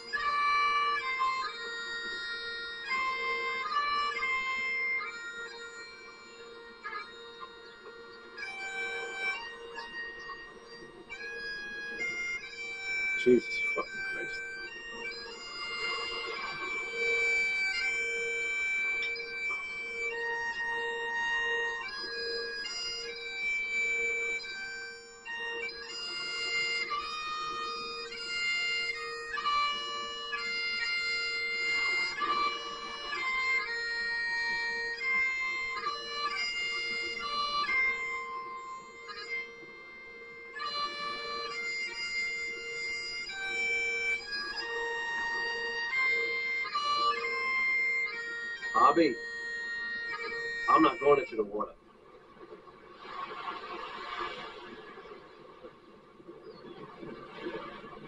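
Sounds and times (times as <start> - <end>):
bagpipes playing a slow tune: 0.0 - 51.8.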